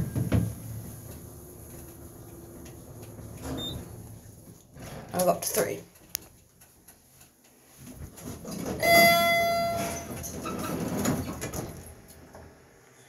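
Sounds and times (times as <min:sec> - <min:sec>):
elevator rumbling: 0:00.0 - 0:06.1, 0:08.0 - 0:12.6
elevator chime: 0:03.5 - 0:03.9, 0:08.8 - 0:10.4.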